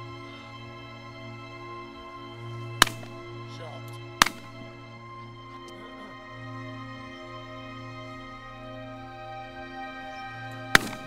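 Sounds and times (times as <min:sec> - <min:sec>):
background music: 0:00.0 - 0:11.0
shotgun shots: 0:02.8 - 0:03.2, 0:04.2 - 0:04.8, 0:10.8 - 0:11.0.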